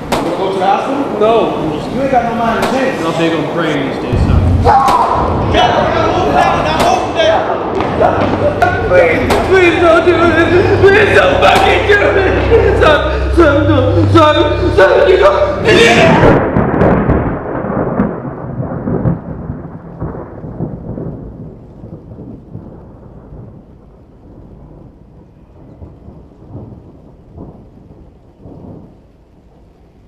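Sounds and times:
thunder rolling: 0:00.0 - 0:30.0.

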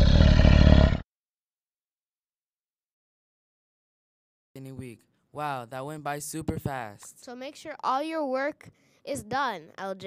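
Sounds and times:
tiger roar: 0:00.0 - 0:01.0.

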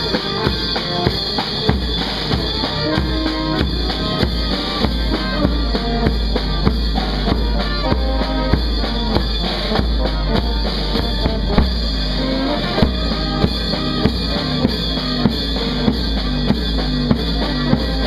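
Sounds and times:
brass band playing a march: 0:00.0 - 0:18.0
steady drum beat: 0:00.0 - 0:18.0
tuba and trumpet notes: 0:00.0 - 0:18.0.

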